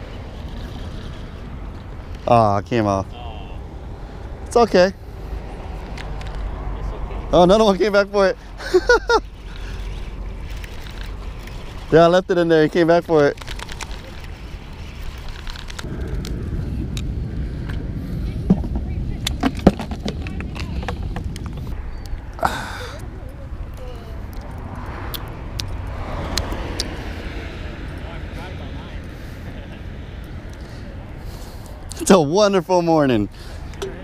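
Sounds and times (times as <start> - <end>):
road traffic rumble: 0.0 - 34.0.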